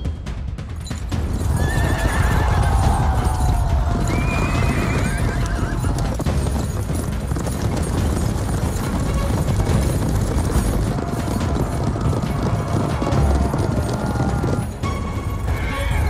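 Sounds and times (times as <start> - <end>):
film score music: 0.0 - 16.0
horses galloping: 0.5 - 16.0
horses whinnying: 1.2 - 16.0.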